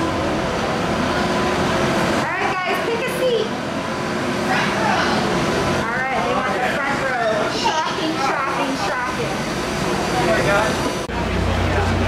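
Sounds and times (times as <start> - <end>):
boat engine rumbling: 0.0 - 12.0.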